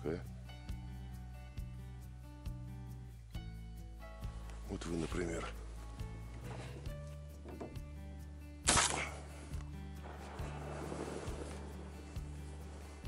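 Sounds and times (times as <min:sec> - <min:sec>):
background music with steady beat: 0:00.0 - 0:13.0
shotgun shot: 0:08.6 - 0:09.3.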